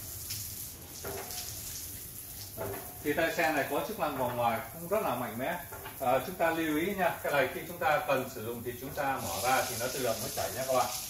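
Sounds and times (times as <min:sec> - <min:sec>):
shower water spraying: 0:00.0 - 0:11.0.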